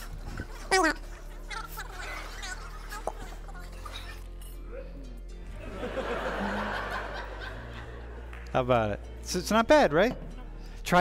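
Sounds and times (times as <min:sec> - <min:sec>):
people laughing: 0:05.4 - 0:08.4.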